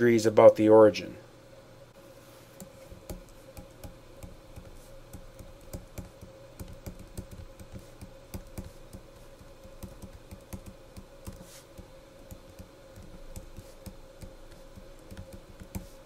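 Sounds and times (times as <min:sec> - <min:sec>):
faint steady hum: 0:00.0 - 0:16.0
stylus clicking on tablet screen: 0:02.6 - 0:16.0.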